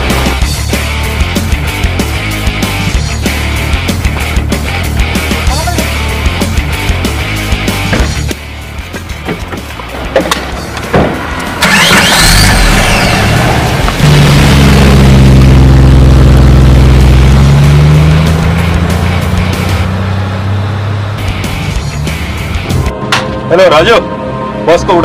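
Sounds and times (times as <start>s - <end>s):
background music: 0.0s - 25.0s
car engine running: 10.6s - 22.9s
burst of noise: 11.6s - 17.2s.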